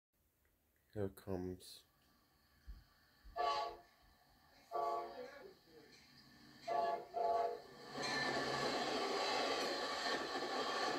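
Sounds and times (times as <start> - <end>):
train rumbling past on rails: 2.0 - 10.9
train horn blasts: 3.3 - 4.0, 4.6 - 5.6, 6.6 - 7.8.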